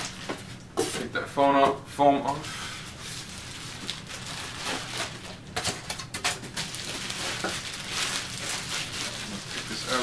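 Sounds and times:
plastic bag rustling: 0:02.4 - 0:10.0.

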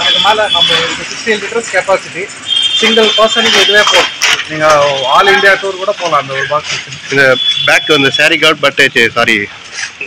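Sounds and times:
man talking: 0:00.0 - 0:09.6.

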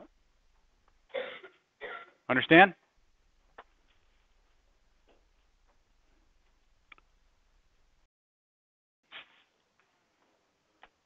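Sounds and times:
low room hum: 0:02.8 - 0:08.1.

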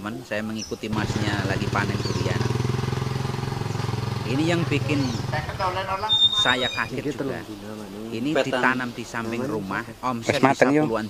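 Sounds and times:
small engine idling: 0:00.9 - 0:07.0.

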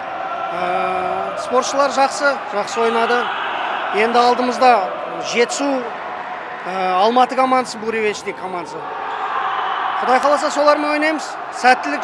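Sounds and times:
echoing sports hall noise: 0:00.0 - 0:12.0.

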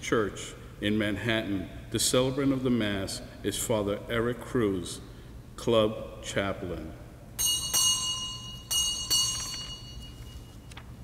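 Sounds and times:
small high-pitched bell ringing: 0:07.4 - 0:10.7.

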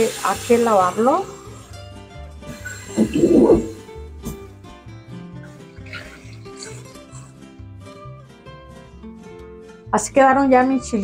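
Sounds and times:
water spraying into colander: 0:00.0 - 0:01.9, 0:02.5 - 0:04.0.

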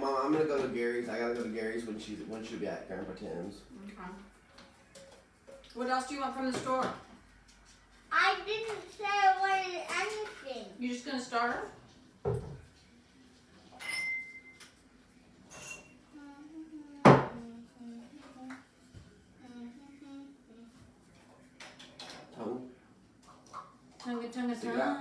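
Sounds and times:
dishes and utensils clattering: 0:04.4 - 0:07.1, 0:13.6 - 0:14.7, 0:15.4 - 0:16.0, 0:21.2 - 0:22.5.

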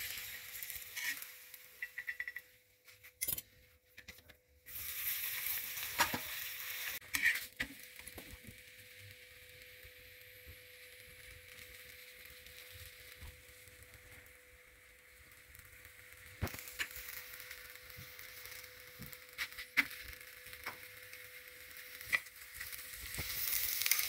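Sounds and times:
flatbread hissing on hot griddle: 0:00.0 - 0:02.3, 0:04.6 - 0:24.0.

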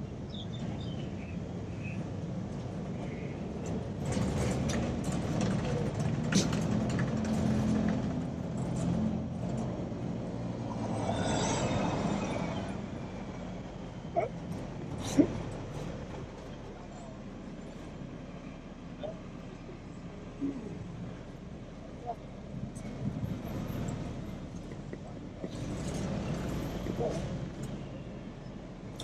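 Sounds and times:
vehicle engine humming: 0:00.0 - 0:29.0.

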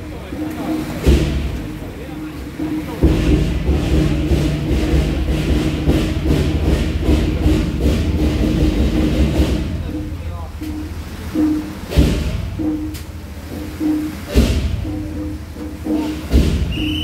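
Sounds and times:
drum and cymbal rhythm: 0:00.0 - 0:17.0
voices: 0:00.0 - 0:17.0.

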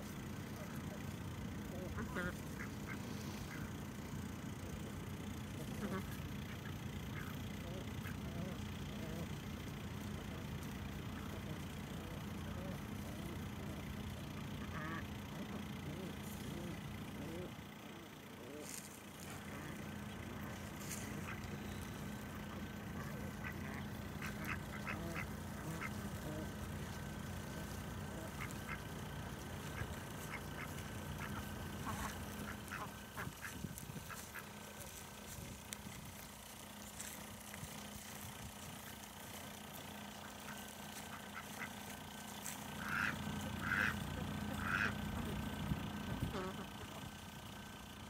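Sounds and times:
ducks quacking: 0:00.0 - 0:47.9
low hum: 0:00.0 - 0:48.0.

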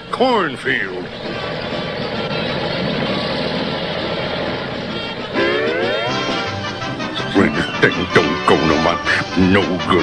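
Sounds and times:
tanks rumbling: 0:00.0 - 0:10.0
rising pitched sound: 0:01.0 - 0:08.5.

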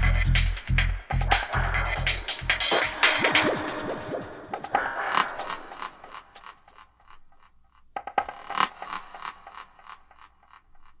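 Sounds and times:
electronic hit with echo repeats: 0:02.4 - 0:06.5.

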